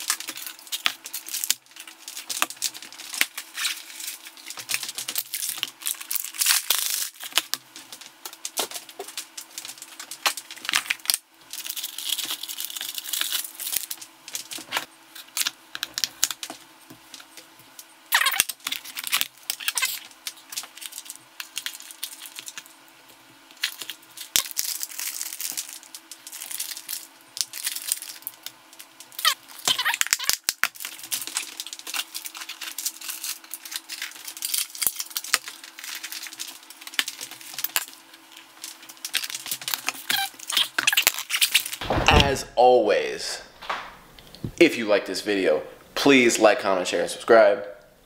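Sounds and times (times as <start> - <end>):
aluminium foil crinkling: 0.0 - 41.8.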